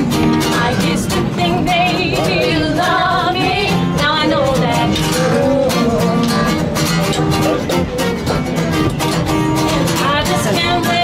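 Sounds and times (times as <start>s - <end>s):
acoustic guitar: 0.0s - 11.0s
women singing: 0.4s - 6.6s, 10.0s - 11.0s.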